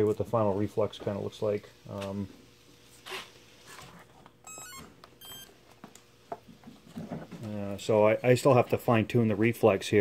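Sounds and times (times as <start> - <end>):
stepped power-up beeps: 4.5 - 5.5.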